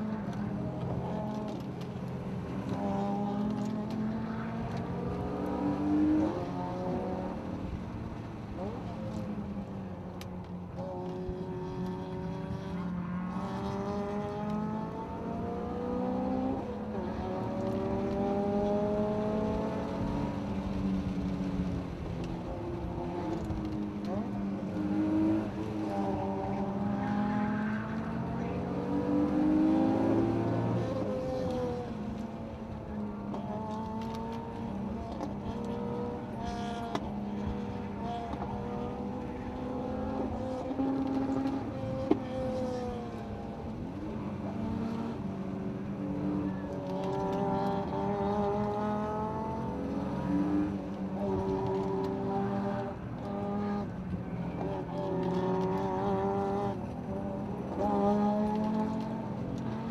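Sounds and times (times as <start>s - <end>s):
car engine revving: 0.0s - 1.8s, 10.8s - 59.9s.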